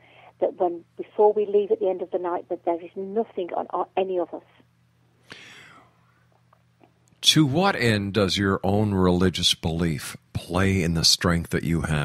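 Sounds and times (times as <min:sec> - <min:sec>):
faint breath: 0:00.0 - 0:00.4, 0:05.2 - 0:06.3
low steady hum: 0:00.0 - 0:12.0.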